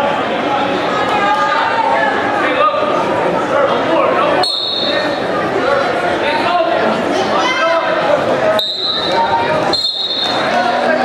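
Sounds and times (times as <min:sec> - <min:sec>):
crowd shouting and cheering: 0:00.0 - 0:11.0
referee whistle blasts: 0:04.4 - 0:05.3, 0:08.6 - 0:10.6.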